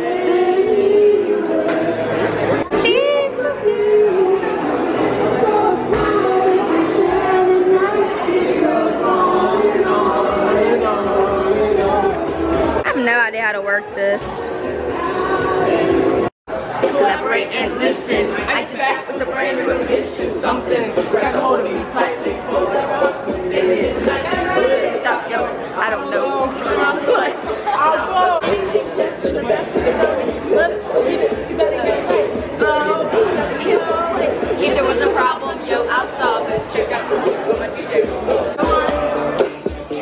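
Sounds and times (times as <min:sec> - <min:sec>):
indistinct chatter of voices: 0:00.0 - 0:40.0.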